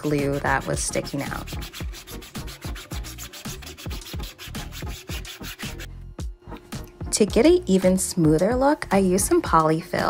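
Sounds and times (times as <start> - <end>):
sanding block scraping plastic: 0.0 - 5.9
background music with thumping beat: 0.0 - 10.0.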